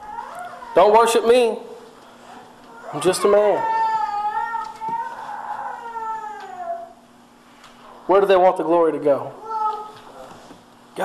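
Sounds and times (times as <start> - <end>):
young child wailing: 0.0 - 1.2, 2.7 - 7.0, 9.4 - 10.3
faint steady hum: 0.0 - 11.0.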